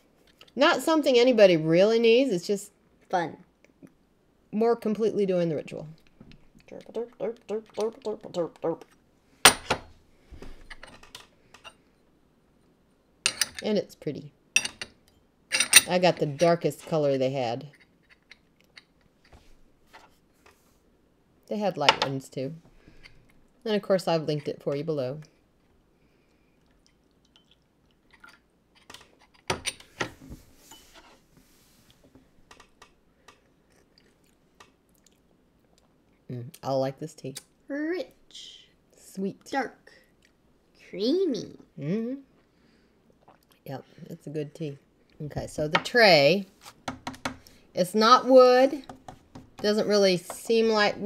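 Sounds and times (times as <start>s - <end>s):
clay teaware clinking: 14.6s - 16.9s.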